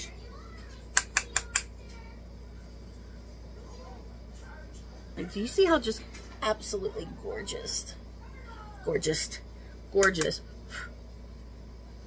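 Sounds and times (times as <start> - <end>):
makeup brush tapping compact: 1.0 - 1.7.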